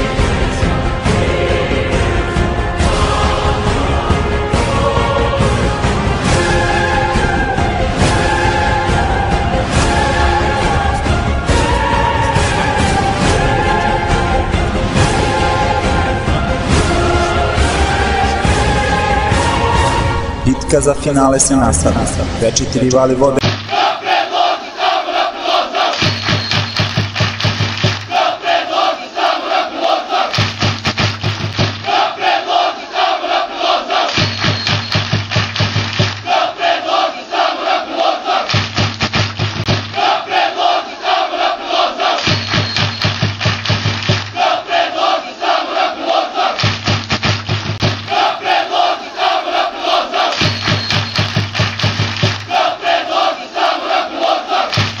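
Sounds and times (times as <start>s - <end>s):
crowd chanting: 0.0s - 20.5s, 23.3s - 35.0s, 36.0s - 38.7s, 39.7s - 46.8s, 47.8s - 55.0s
fast steady drumbeat: 26.0s - 28.4s, 30.3s - 32.1s, 34.2s - 36.4s, 38.5s - 40.2s, 42.3s - 44.5s, 46.6s - 49.2s, 50.2s - 53.4s, 54.7s - 55.0s.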